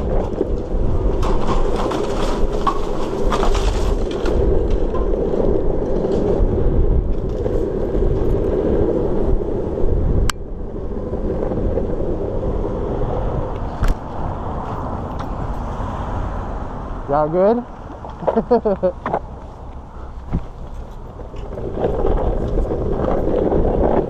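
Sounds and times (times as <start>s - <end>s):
rolling road noise: 0.0s - 24.0s
wind rushing over microphone: 0.0s - 24.0s.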